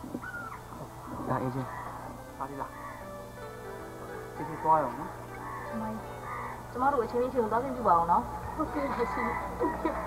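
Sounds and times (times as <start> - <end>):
quiet talking: 0.0 - 10.0
bird call: 0.2 - 0.7.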